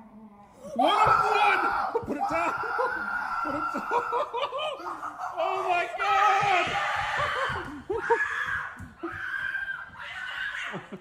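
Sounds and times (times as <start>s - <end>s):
people screaming and laughing: 0.8s - 11.0s.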